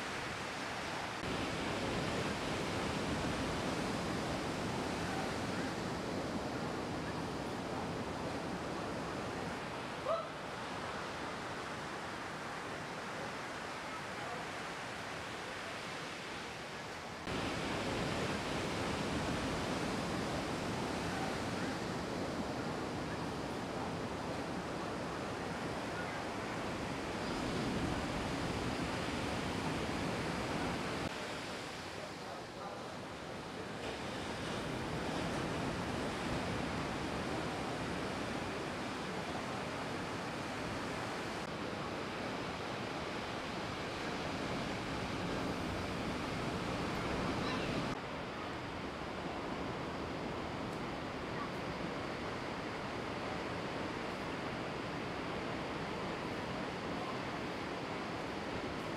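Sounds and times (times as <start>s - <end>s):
ocean surf breaking: 0.0s - 58.9s.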